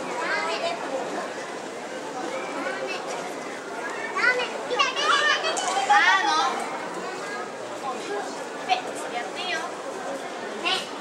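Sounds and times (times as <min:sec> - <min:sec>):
crowd murmuring and talking: 0:00.0 - 0:11.0.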